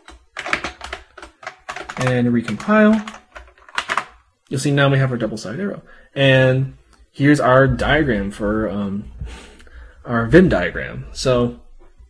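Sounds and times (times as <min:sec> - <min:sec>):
computer keyboard typing: 0:00.0 - 0:04.2.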